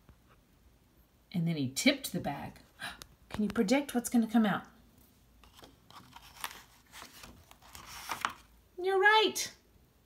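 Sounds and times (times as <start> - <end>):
paper page rustling: 5.4 - 8.5.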